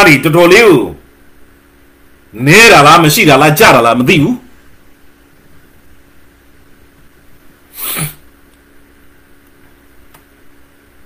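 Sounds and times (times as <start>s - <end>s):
faint room hum: 0.0s - 11.0s
man sharp burst of breath: 7.7s - 8.2s.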